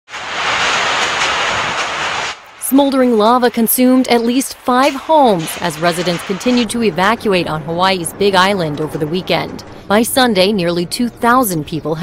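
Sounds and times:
loud steady rushing noise: 0.1 - 10.5.

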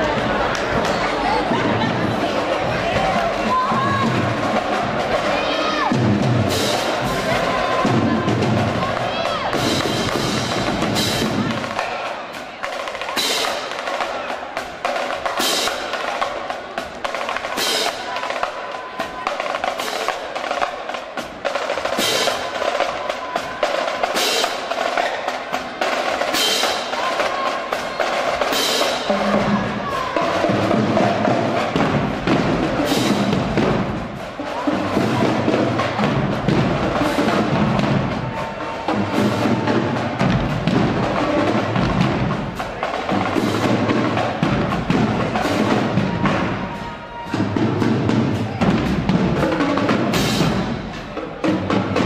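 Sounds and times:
crowd chatter: 0.0 - 52.0
drumline playing cadence: 0.0 - 52.0.

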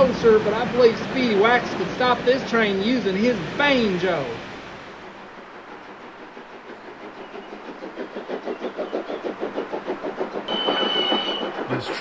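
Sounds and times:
train wheels clickety-clack: 0.0 - 12.0
high steady whistling tone: 10.4 - 12.0.

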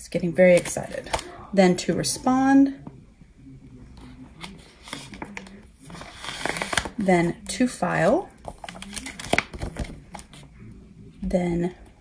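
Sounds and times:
plastic file pockets crinkling: 4.4 - 7.3, 8.4 - 10.3.

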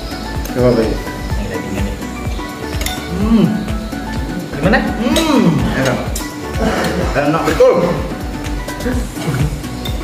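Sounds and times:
background music: 0.0 - 10.0
spoons clinking on ceramic bowls: 2.7 - 3.1.

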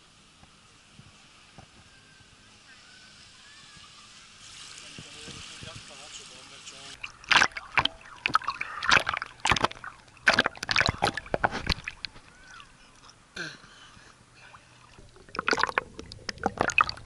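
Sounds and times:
distant voices: 1.1 - 17.0
seawater sloshing and splashing: 7.0 - 13.1, 14.5 - 17.0.

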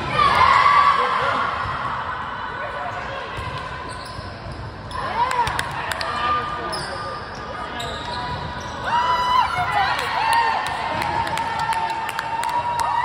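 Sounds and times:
sneakers squeaking on floor: 2.9 - 5.3, 6.6 - 9.1.

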